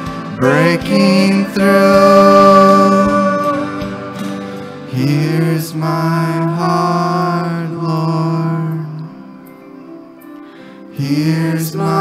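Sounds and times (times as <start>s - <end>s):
worship band singing: 0.0s - 9.3s, 10.9s - 12.0s.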